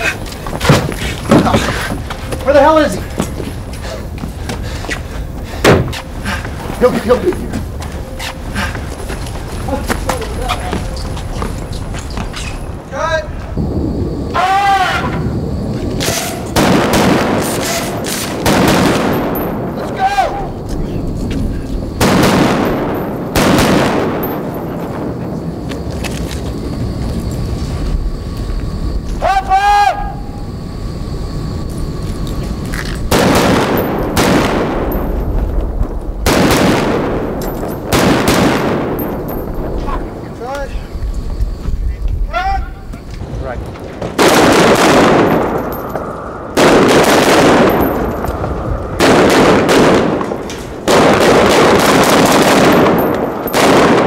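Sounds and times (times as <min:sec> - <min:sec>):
people shouting: 0:14.3 - 0:15.3, 0:19.9 - 0:20.6, 0:29.2 - 0:30.4, 0:42.3 - 0:42.8
automatic gunfire bursts: 0:50.9 - 0:54.0.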